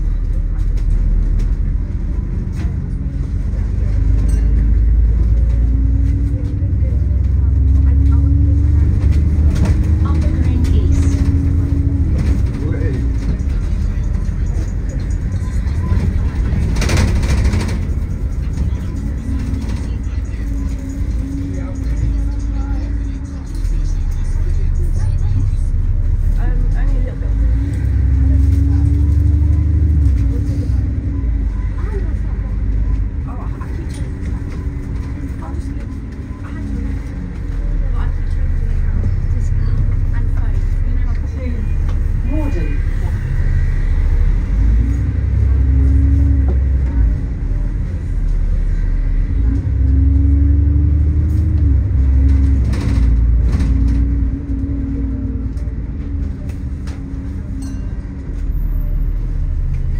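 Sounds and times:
bus drivetrain and road rumble: 0:00.0 - 0:59.9.

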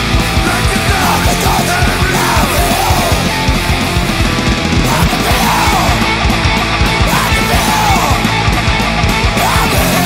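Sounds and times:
distorted electric guitars: 0:00.0 - 0:10.0
fast driving drums: 0:00.0 - 0:10.0.

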